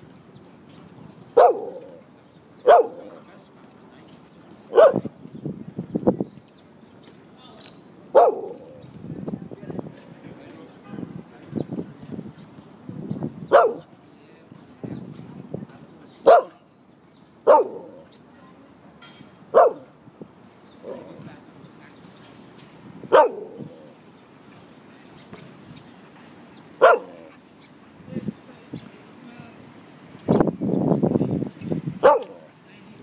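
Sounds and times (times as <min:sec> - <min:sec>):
dog barking: 0:01.4 - 0:02.0, 0:02.6 - 0:03.3, 0:04.7 - 0:05.1, 0:08.1 - 0:08.8, 0:13.5 - 0:14.0, 0:16.3 - 0:16.6, 0:17.4 - 0:18.1, 0:19.5 - 0:19.9, 0:23.1 - 0:23.9, 0:26.8 - 0:27.4, 0:32.0 - 0:32.5.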